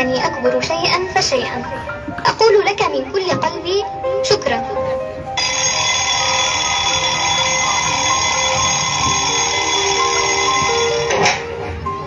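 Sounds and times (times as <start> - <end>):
light background music melody: 0.0 - 12.0
alarm clock bell ringing: 5.4 - 11.6.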